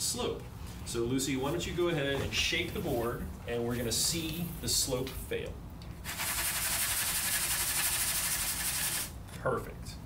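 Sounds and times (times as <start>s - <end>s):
sand hissing on shaken wooden tray: 6.0s - 9.1s.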